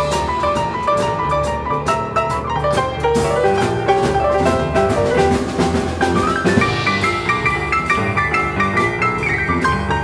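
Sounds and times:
boogie-woogie piano playing: 0.0s - 10.0s
steady beat of sharp hits: 2.7s - 8.5s.

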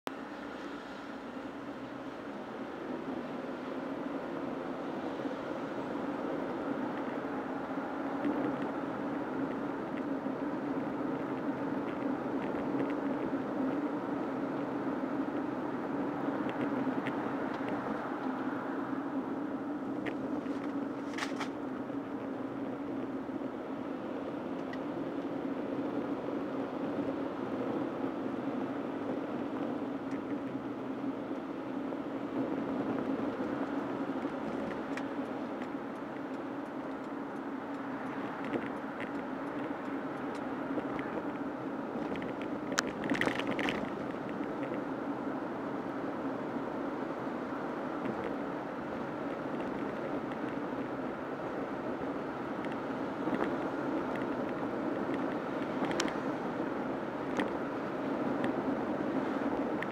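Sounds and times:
car road and engine noise: 0.0s - 59.9s.

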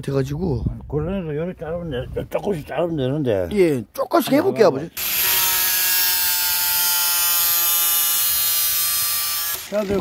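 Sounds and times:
angle grinder whine: 5.0s - 10.0s.

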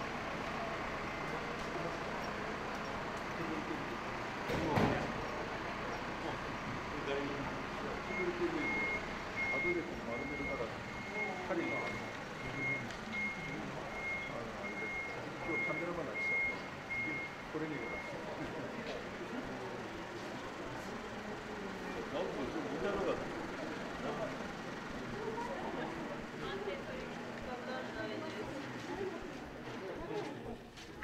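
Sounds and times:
people chattering: 0.0s - 31.0s
reversing alarm beeping: 7.2s - 18.5s.

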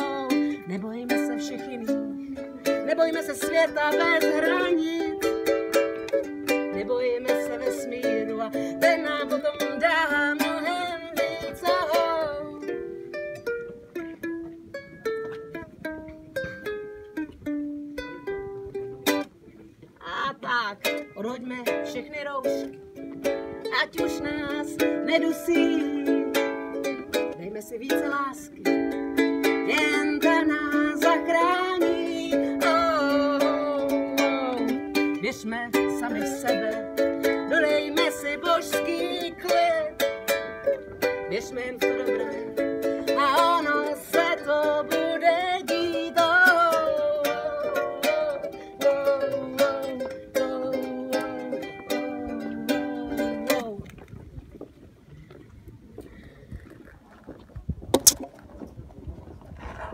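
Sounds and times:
woman singing: 0.0s - 12.8s, 20.0s - 22.8s, 23.6s - 54.0s
ukulele strumming: 0.0s - 54.6s, 57.8s - 58.7s
wind rumble on microphone: 9.8s - 20.4s, 52.2s - 59.9s.

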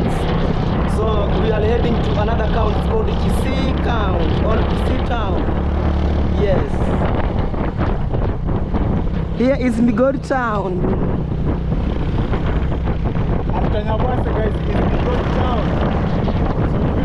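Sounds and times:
motorcycle engine running: 0.0s - 17.0s
wind buffeting microphone: 0.0s - 17.0s.

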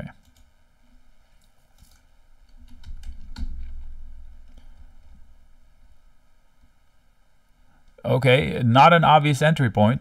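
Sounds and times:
keyboard typing clicks: 0.2s - 0.5s.

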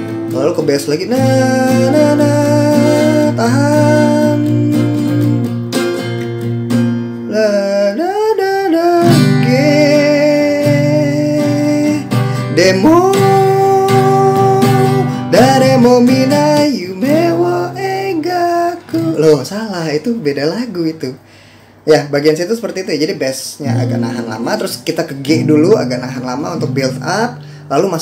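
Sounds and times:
acoustic guitar strumming: 0.0s - 21.0s, 23.4s - 28.0s
man singing: 0.2s - 5.5s, 7.2s - 21.2s, 23.4s - 28.0s.

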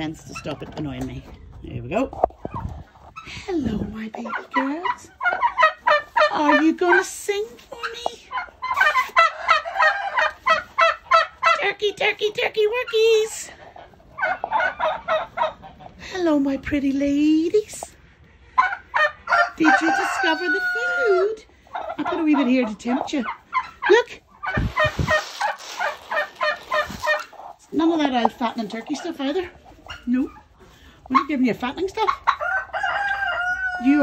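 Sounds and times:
turkeys calling: 4.1s - 11.8s, 12.6s - 16.1s, 17.8s - 34.0s.

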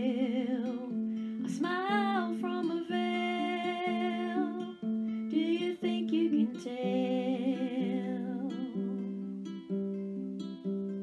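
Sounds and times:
fingerpicked ukulele: 0.0s - 11.0s.

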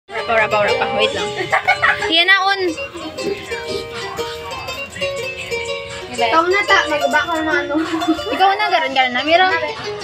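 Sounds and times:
karaoke instrumental melody: 0.1s - 10.0s.

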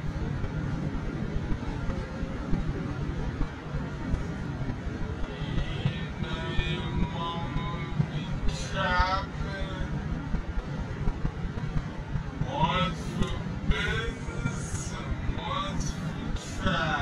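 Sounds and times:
car road and wind rumble: 0.0s - 17.0s.

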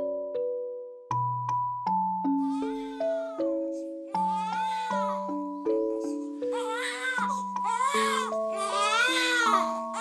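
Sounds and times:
background music of held notes: 0.0s - 10.0s
newborn baby crying: 2.4s - 10.0s.

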